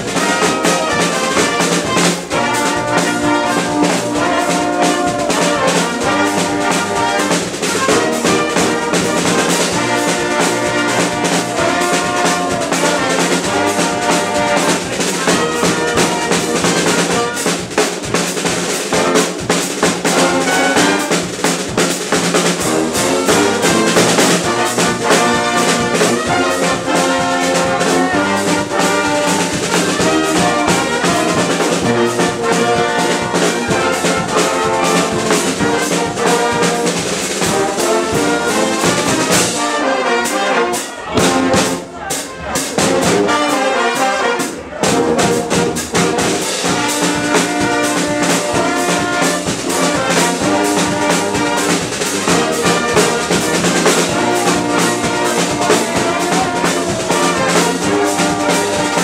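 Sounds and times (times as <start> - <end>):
brass band playing: 0.0 - 59.0
snare and bass drum: 0.0 - 59.0.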